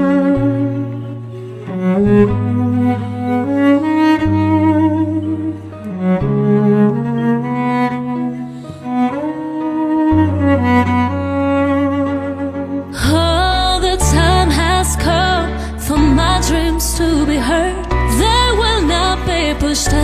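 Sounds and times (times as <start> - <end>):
cello playing slow melody: 0.0 - 20.0.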